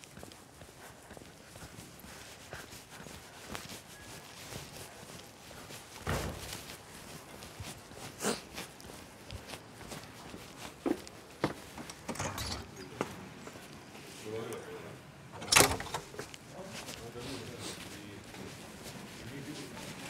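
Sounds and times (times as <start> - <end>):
footsteps on paving: 0.0 - 12.1, 12.9 - 14.6, 16.1 - 20.0
door banging shut: 6.0 - 6.5, 11.9 - 12.8, 15.3 - 16.2.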